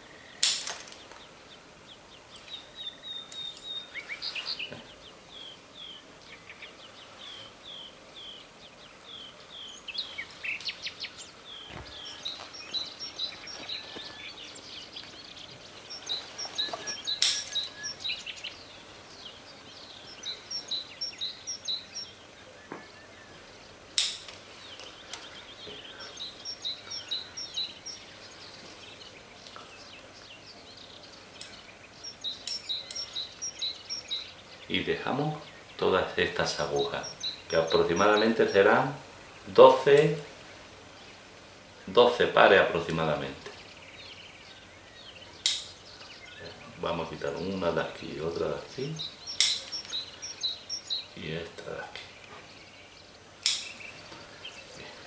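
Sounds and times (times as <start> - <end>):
small birds chirping: 0.0 - 55.0.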